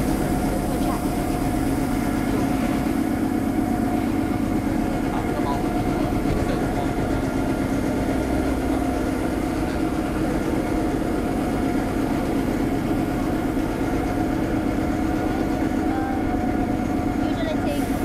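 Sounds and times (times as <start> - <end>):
street sweeper mechanical hum: 0.0 - 18.0.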